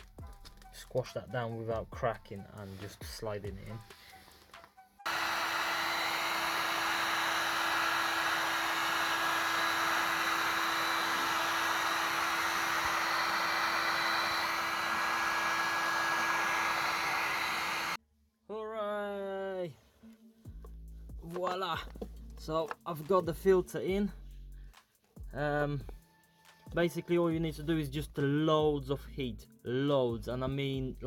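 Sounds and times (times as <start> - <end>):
heat gun blowing hot air: 5.1 - 18.0.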